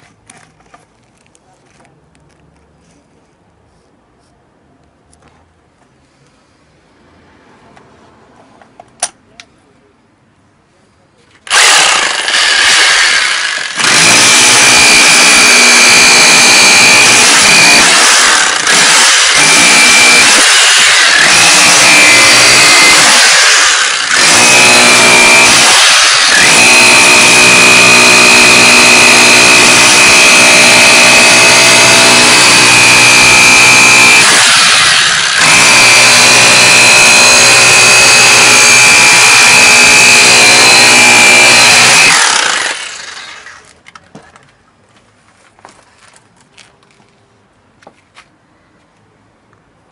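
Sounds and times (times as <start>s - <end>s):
rotary hammer chiselling concrete: 11.5s - 43.6s.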